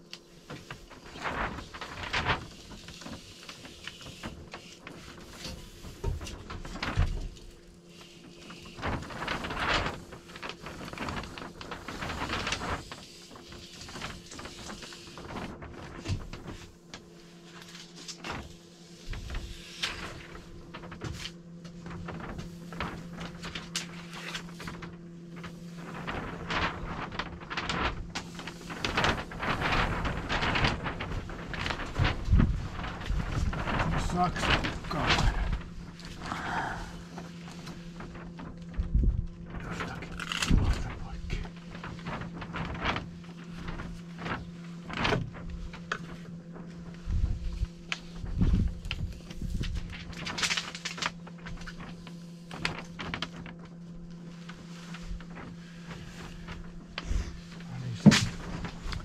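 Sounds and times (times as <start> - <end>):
foil crinkling and rustling: 0.0 - 59.0.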